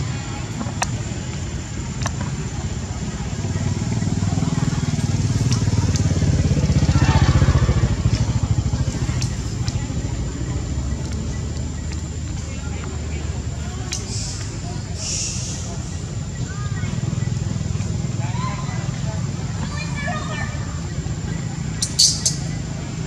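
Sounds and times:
motorcycle engine rumbling: 0.0s - 23.0s.

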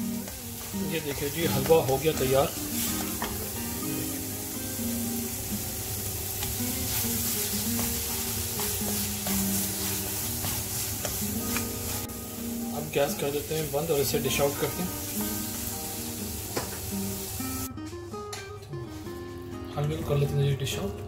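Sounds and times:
food sizzling in a pan: 0.0s - 17.7s
soft background music: 0.0s - 21.0s
spatula scraping a pan: 6.4s - 12.0s.

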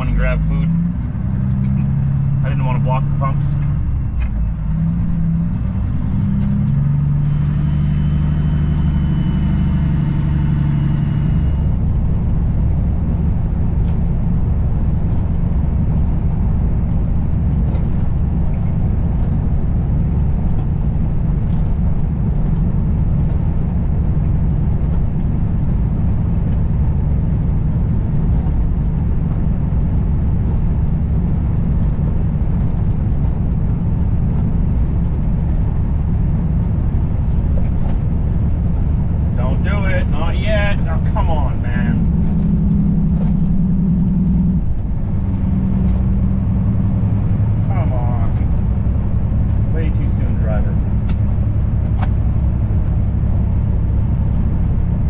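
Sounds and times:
diesel truck engine running: 0.0s - 55.0s
tyres and wind at highway speed: 0.0s - 55.0s.

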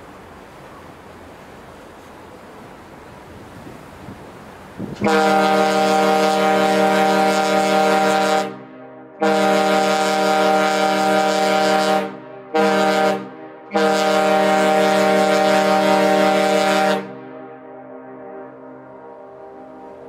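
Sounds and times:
deep ship horn blasts: 4.8s - 20.0s
horn echo: 5.0s - 20.0s.

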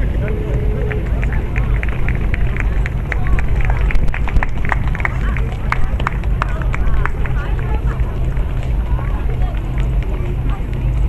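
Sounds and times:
indistinct voices: 0.0s - 11.0s
steady low hum: 0.0s - 11.0s.

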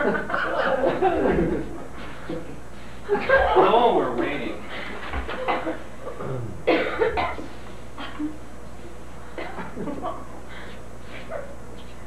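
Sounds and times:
person coughing: 5.4s - 8.3s, 9.4s - 9.7s.

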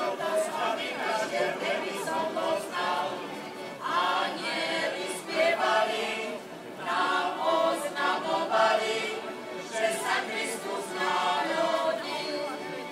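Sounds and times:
choir singing: 0.0s - 12.9s.

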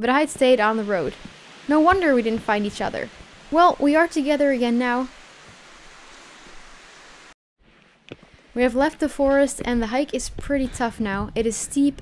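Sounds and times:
wind and rustle noise: 0.0s - 12.0s.

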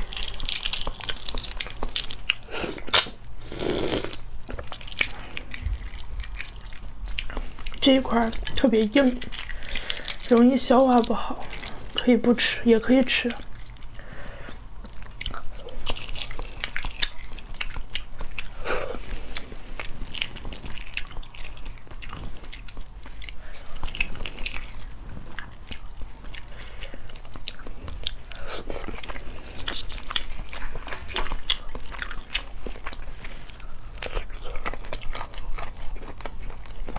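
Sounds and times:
eggshell crackling and clicking: 0.0s - 3.2s, 4.1s - 14.0s
chewing: 0.0s - 36.9s
eggshell crackling while peeled: 0.0s - 36.9s
woman speaking: 7.8s - 9.2s, 10.3s - 13.4s.

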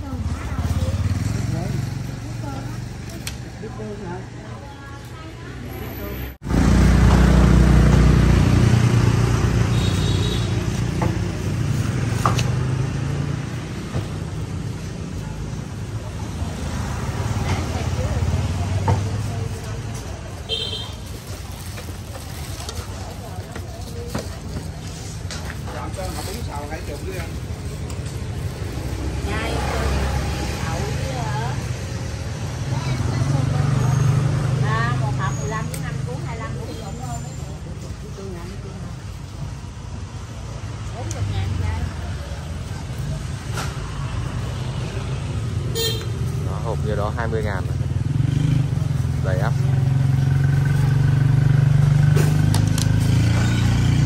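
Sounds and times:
people talking: 0.0s - 6.4s, 29.1s - 31.8s, 32.6s - 39.0s
vehicle engines passing: 0.0s - 54.0s.

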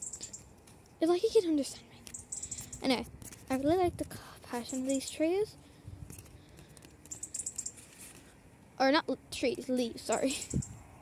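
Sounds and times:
hand tapping and brushing leaves: 0.0s - 5.4s, 6.0s - 8.4s.

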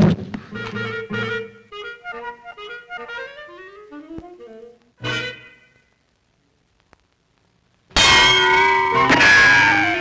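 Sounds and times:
metallic clang with ringing tones: 8.0s - 9.5s.

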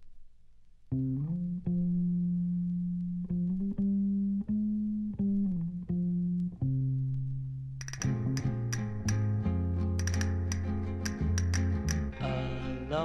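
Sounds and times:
low sliding guitar notes: 0.9s - 13.0s.

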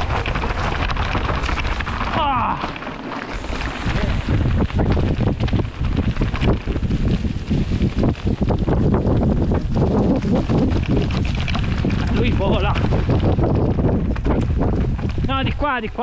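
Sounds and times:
bike clattering and rattling: 0.0s - 16.0s
tyres rolling over loose stones: 0.0s - 16.0s
wind buffeting microphone: 0.0s - 16.0s.

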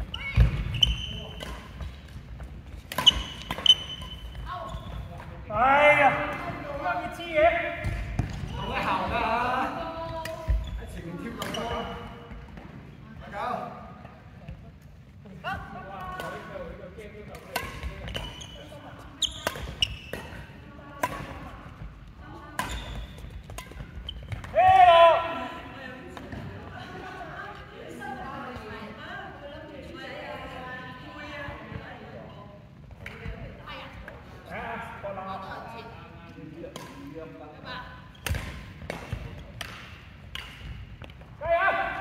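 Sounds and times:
racket striking shuttlecock: 2.8s - 4.2s, 17.3s - 18.4s, 19.4s - 20.4s, 21.0s - 21.4s, 22.6s - 24.5s, 38.2s - 41.2s.

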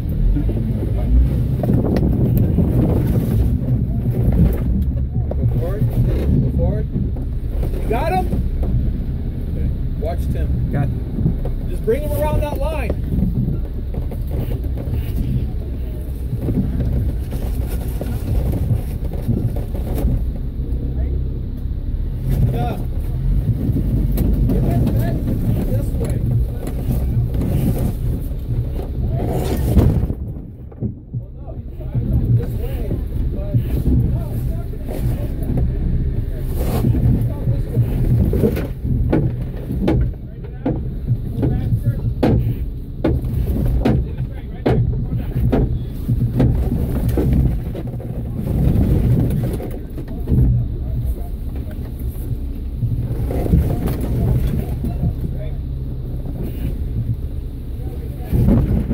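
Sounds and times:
engine running at low revs: 0.0s - 58.9s
knocks: 36.9s - 48.1s.

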